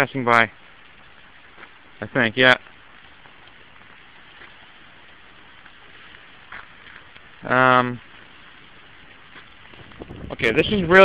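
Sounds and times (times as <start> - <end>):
light rain hiss: 0.0 - 11.0.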